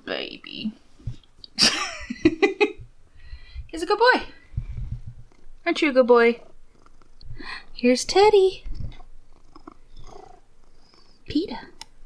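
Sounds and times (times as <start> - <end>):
cat purring: 4.2 - 11.8.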